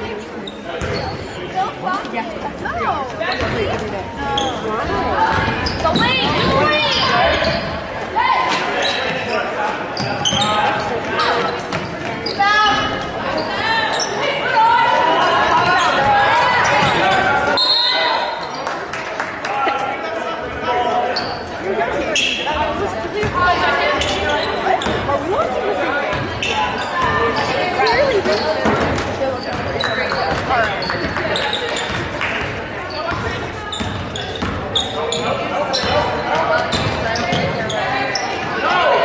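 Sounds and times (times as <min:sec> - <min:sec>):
basketball bouncing on wooden court: 0:03.4 - 0:03.8, 0:05.3 - 0:07.6, 0:33.1 - 0:34.6, 0:36.7 - 0:37.6.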